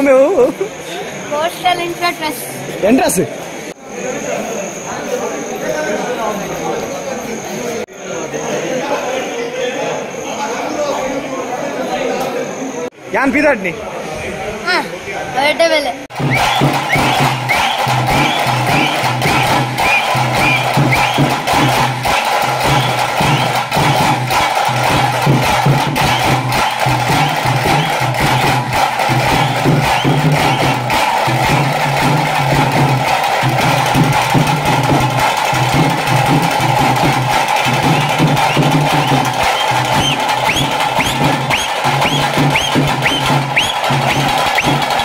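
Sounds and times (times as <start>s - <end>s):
drums beating fast rhythm: 16.1s - 45.0s.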